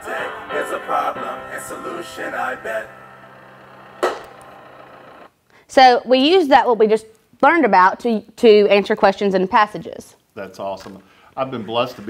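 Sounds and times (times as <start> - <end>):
low hum: 0.0 - 5.3
sharp knock: 4.0 - 5.3.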